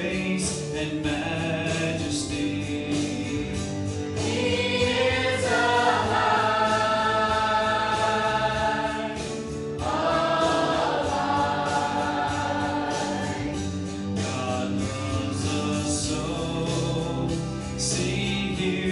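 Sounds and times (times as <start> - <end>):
church choir singing gospel: 0.0 - 18.9.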